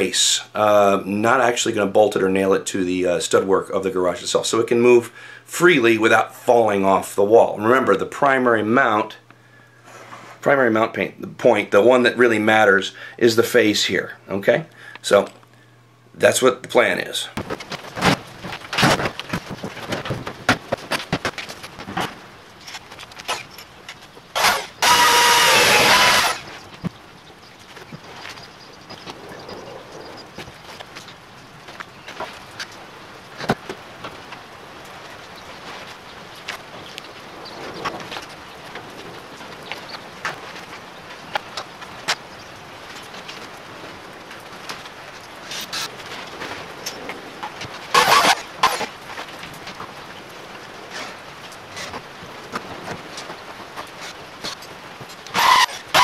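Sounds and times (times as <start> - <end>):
power drill running: 24.3 - 26.6, 48.0 - 48.8, 55.3 - 56.0.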